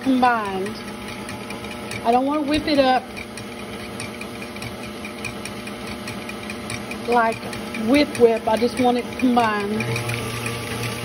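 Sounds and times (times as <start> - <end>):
electric stand mixer whisking: 0.0 - 11.0.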